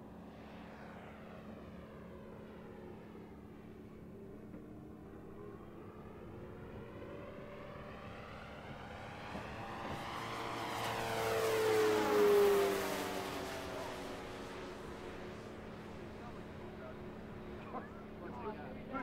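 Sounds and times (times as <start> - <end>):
model plane motor and propeller hum: 0.0 - 19.0.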